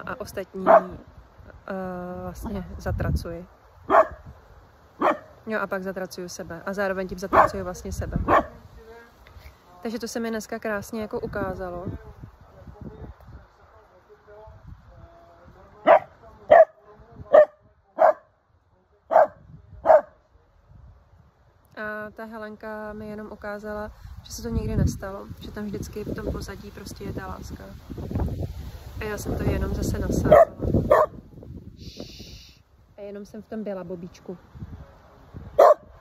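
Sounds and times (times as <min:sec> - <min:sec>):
dog barking: 0:00.6 - 0:01.0, 0:03.9 - 0:04.2, 0:05.0 - 0:05.4, 0:07.3 - 0:07.6, 0:08.2 - 0:08.6, 0:15.8 - 0:18.3, 0:19.1 - 0:20.2, 0:30.3 - 0:31.2, 0:35.6 - 0:36.0
brief high hiss: 0:31.8 - 0:32.6.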